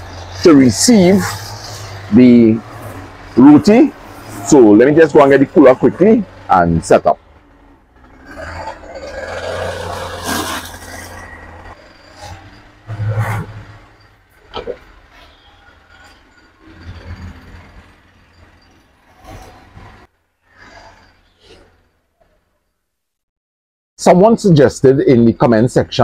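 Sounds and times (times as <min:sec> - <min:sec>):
foam cooler rubbing and scraping: 0:09.1 - 0:11.5.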